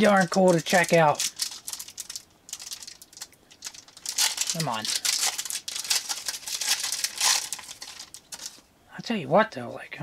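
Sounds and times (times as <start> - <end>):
foil wrapper crackling: 0.0 - 8.6.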